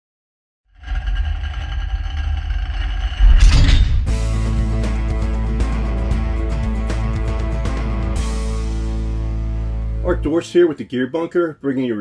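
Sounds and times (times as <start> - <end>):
low rumble: 0.8 - 5.4
loud whooshing hit: 3.2 - 4.5.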